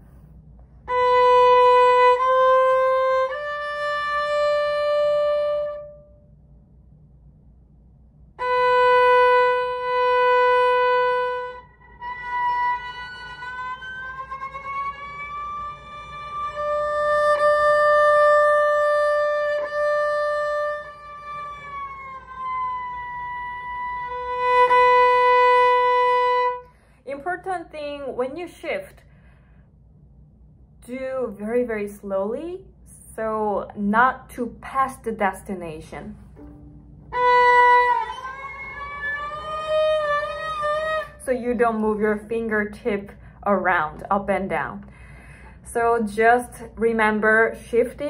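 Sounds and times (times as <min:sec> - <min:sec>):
bowed solo violin: 0:00.8 - 0:06.1, 0:08.4 - 0:26.7, 0:36.4 - 0:41.3.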